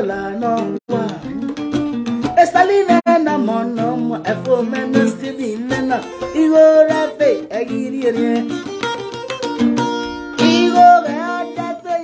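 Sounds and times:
man singing: 0.0s - 9.1s, 10.4s - 12.0s
acoustic guitar strumming: 0.0s - 12.0s.

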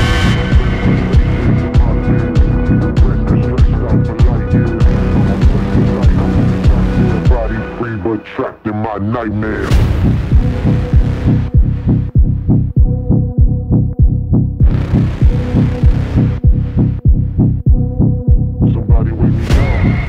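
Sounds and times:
pulsing bass kick: 0.0s - 7.7s, 9.6s - 20.0s.

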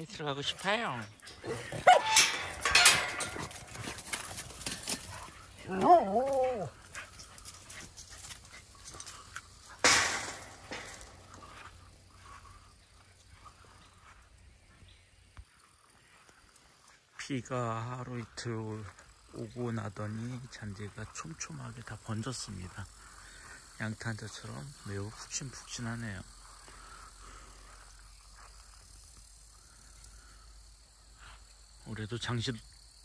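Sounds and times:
dogs whimpering and yipping: 1.3s - 2.5s, 5.6s - 7.1s.

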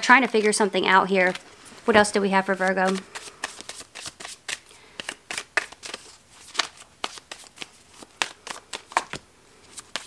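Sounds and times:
cards being shuffled: 2.5s - 10.0s.

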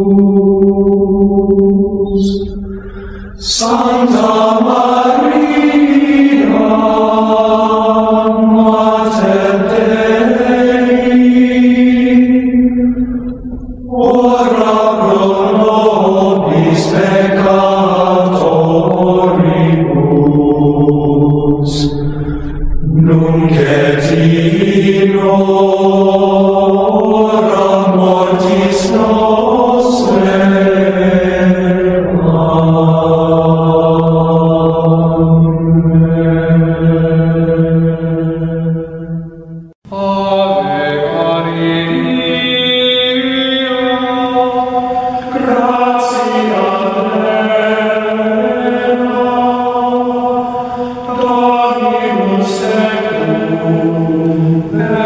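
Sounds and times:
choir chanting: 0.0s - 55.0s.

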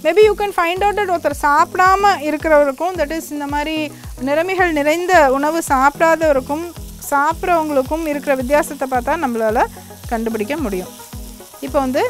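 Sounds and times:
vegetables sizzling in a frying pan: 0.0s - 12.0s.

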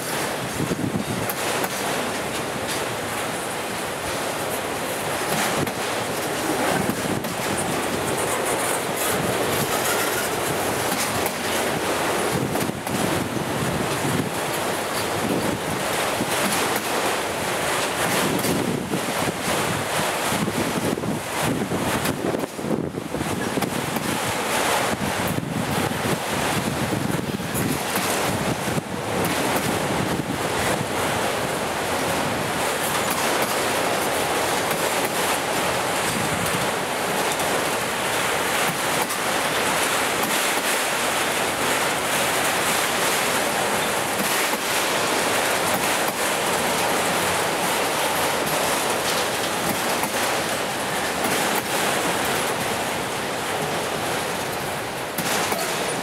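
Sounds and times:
steel wheels rushing on rail: 0.0s - 56.0s.

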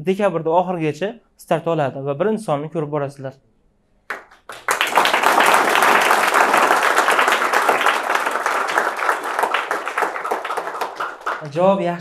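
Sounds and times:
audience applauding: 4.1s - 11.8s.

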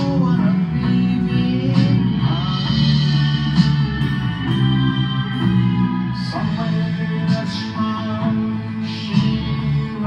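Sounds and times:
electric guitar held notes: 0.0s - 10.0s.

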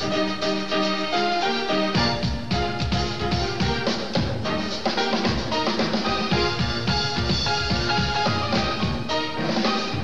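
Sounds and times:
drum kit played busily: 0.0s - 10.0s
fast bass line: 2.0s - 10.0s.

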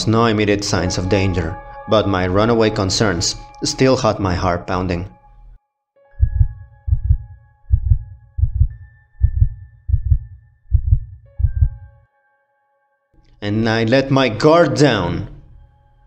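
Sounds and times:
heartbeat: 6.2s - 11.9s.

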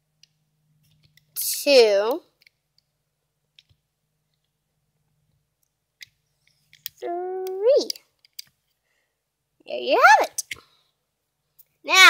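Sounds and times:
girl speaking: 1.4s - 2.3s, 7.0s - 8.0s, 9.7s - 10.6s
rubber bands and plastic loom clicks: 5.6s - 8.6s.

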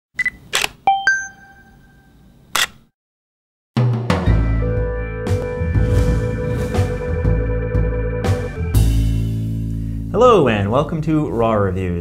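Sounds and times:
camera shutter click: 0.5s - 0.8s, 2.6s - 2.8s
ringing tone: 0.9s - 2.1s
music with deep bass: 4.3s - 10.1s.

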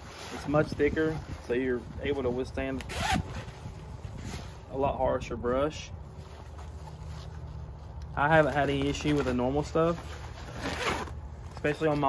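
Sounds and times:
fabric rustling: 5.6s - 12.0s.

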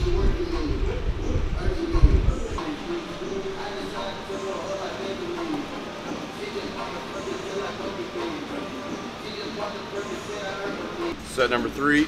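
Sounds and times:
man rapping over a beat: 0.0s - 11.2s.

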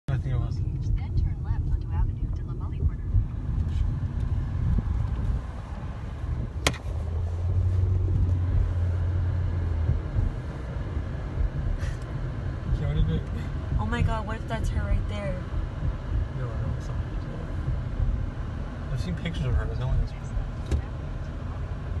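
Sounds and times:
road noise: 0.0s - 22.0s
car engine rumble: 0.1s - 22.0s.

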